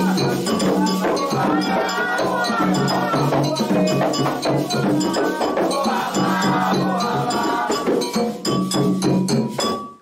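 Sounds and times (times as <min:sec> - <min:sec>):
voices singing: 0:00.0 - 0:08.4
hand drums: 0:00.0 - 0:10.0
metal bell struck rhythmically: 0:00.0 - 0:10.0.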